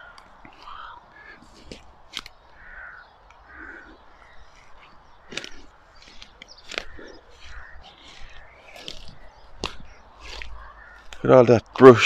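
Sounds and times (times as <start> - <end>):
crows cawing: 0.0 - 12.0
sharp clicks: 4.2 - 11.3.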